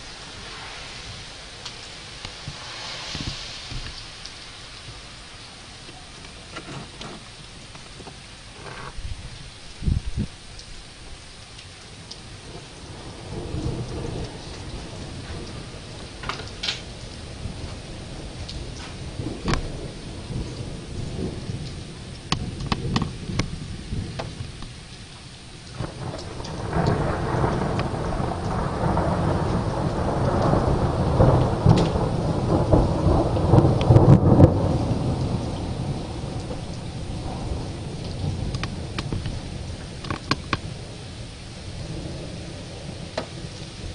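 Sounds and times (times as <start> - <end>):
steady rain: 0.0 - 43.9
thunder rumbling: 0.0 - 43.9
raindrops ticking: 1.6 - 43.9.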